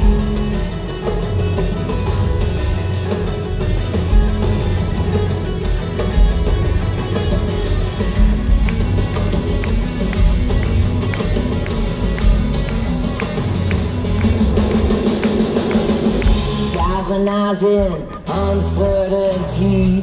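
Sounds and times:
bass guitar: 0.0 - 20.0
drum kit beat: 0.0 - 20.0
electric guitars: 0.0 - 20.0.

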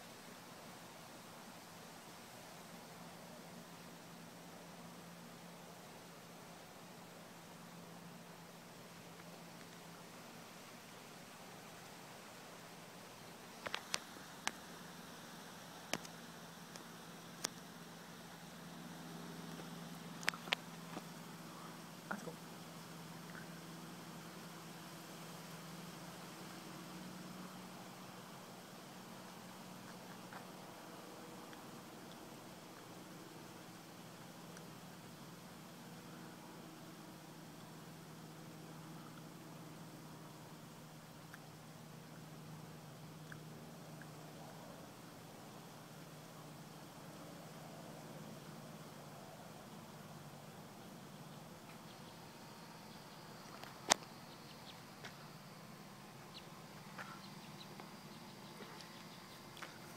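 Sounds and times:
background hiss: 0.0 - 59.9
faint low hum: 0.0 - 59.9.

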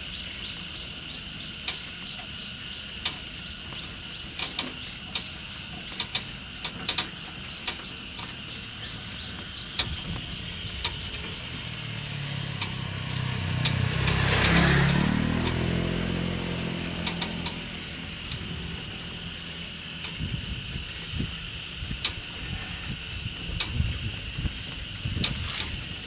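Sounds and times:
steady high hum: 0.0 - 14.2, 14.8 - 26.0
vehicle engine passing by: 8.8 - 26.0.

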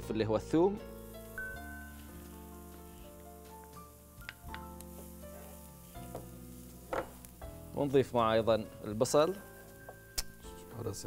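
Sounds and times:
garlic sizzling in oil: 0.8 - 11.0
wooden spoon knocking on pan: 6.9 - 7.3.

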